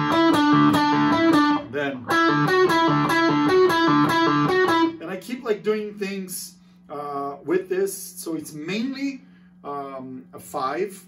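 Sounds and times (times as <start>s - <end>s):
electric guitar riff: 0.0s - 5.2s.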